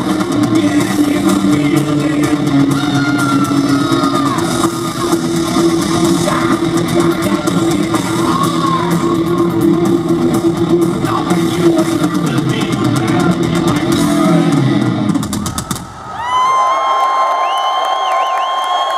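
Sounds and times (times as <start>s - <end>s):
heavy metal band playing live: 0.0s - 16.0s.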